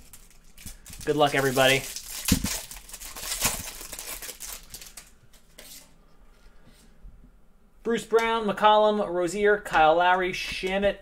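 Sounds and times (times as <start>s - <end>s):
plastic wrapper tearing and crinkling: 0.0s - 5.8s.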